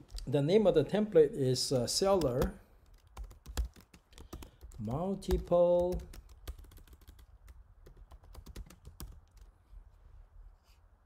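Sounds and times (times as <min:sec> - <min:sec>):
computer keyboard typing: 0:01.8 - 0:09.5.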